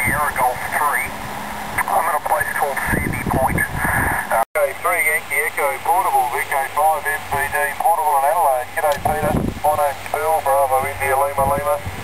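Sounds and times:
man's voice over radio speaker: 0.0 - 1.1, 1.8 - 11.8.

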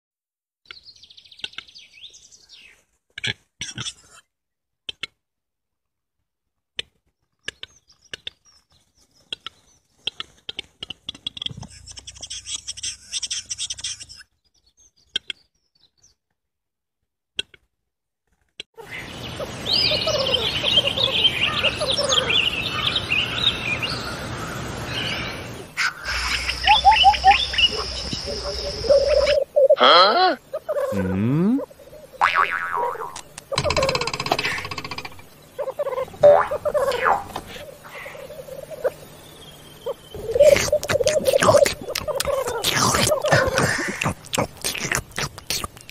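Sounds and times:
buzzy bird call: 25.8 - 45.9
low bubbling cooing: 30.7 - 38.9, 40.1 - 45.9
higher sliding bird calls: 32.2 - 39.0
bird clicks: 33.1 - 35.3.

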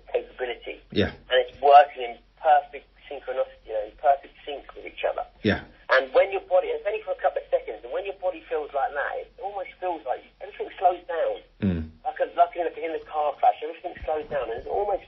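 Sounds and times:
man talking: 0.0 - 15.0.

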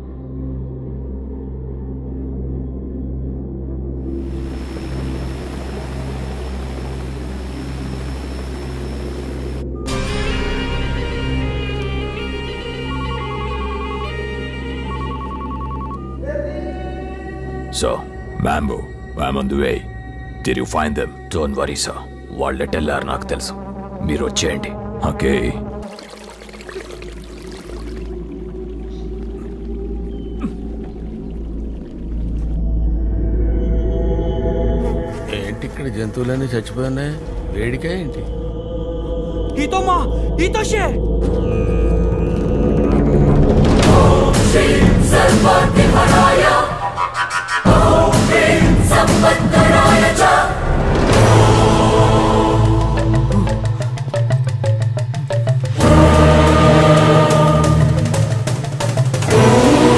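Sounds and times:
film music: 0.0 - 59.9
rushing air noise: 4.2 - 9.7
man speaking angrily: 20.6 - 25.7, 39.6 - 41.0.

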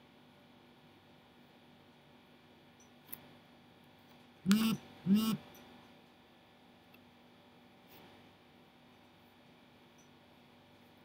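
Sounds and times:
faint steady hum: 0.0 - 11.0
man humming: 4.5 - 5.4.

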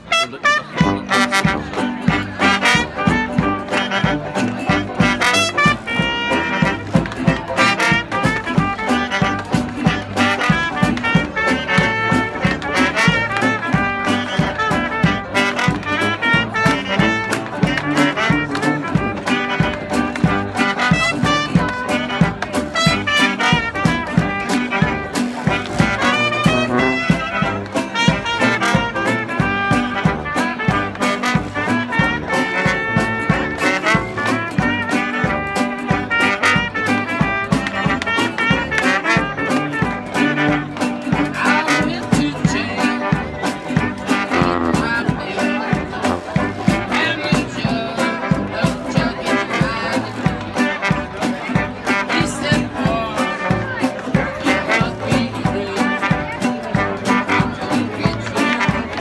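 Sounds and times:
jazz band playing live: 0.0 - 59.0.

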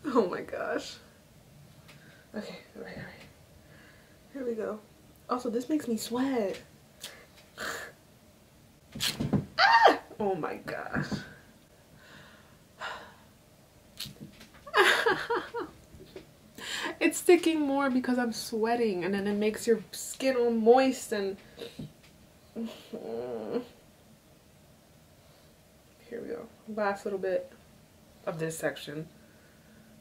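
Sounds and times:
woman's creaky hum: 9.0 - 10.2, 22.5 - 23.8
woman breathing sharply: 12.0 - 13.3, 16.6 - 17.0
woman gasping: 16.6 - 17.0.

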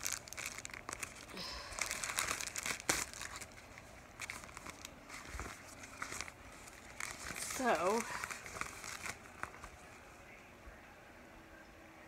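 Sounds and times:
vinyl crinkling and crackling: 0.0 - 10.4.

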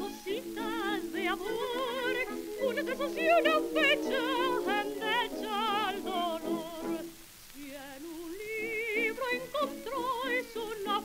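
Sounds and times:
soprano singing: 0.0 - 11.0
orchestral accompaniment: 0.2 - 7.1.

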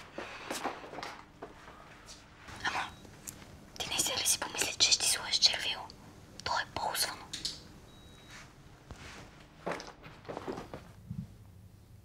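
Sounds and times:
girl whispering: 2.6 - 3.0, 3.8 - 7.3.

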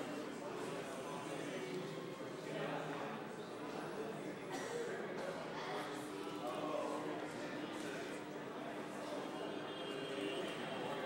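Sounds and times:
murmur of many people talking: 0.0 - 11.0.

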